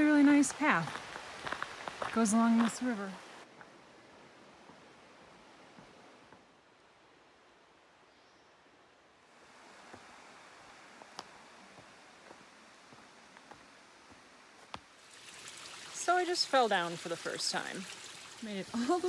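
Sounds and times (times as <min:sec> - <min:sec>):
faint outdoor hiss: 0:00.0 - 0:19.0.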